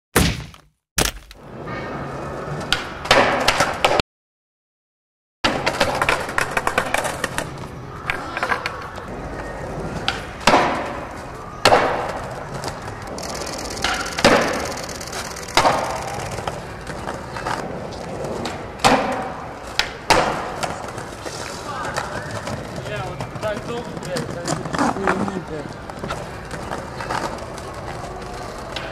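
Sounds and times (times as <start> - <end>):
skateboard popping and landing: 2.6 - 4.0, 5.5 - 8.9, 9.9 - 21.2
skateboard wheels rolling on stone: 5.5 - 28.9.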